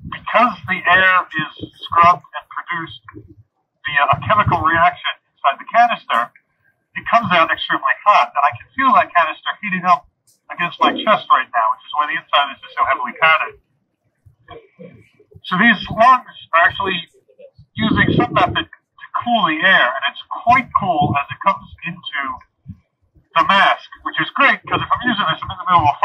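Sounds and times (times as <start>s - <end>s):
man talking through breathing mask: 0.1s - 3.2s, 3.9s - 6.3s, 7.0s - 13.5s, 15.4s - 17.1s, 17.8s - 22.4s, 23.4s - 26.0s.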